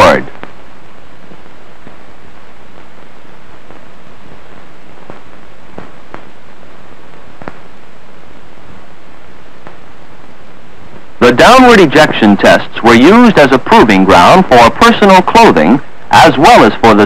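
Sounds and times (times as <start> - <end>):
film soundtrack hiss: 0.0 - 17.0
clicks and pops: 7.1 - 7.7.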